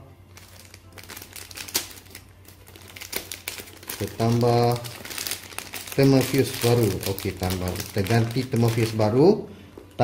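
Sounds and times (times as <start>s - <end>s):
plastic packet crinkling: 0.4s - 9.2s.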